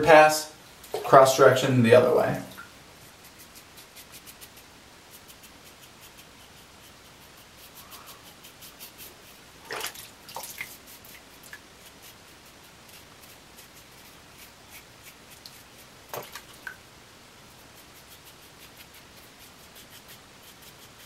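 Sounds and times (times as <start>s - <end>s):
razor scraping stubble: 3.0s - 9.6s, 10.4s - 16.5s, 17.5s - 21.0s.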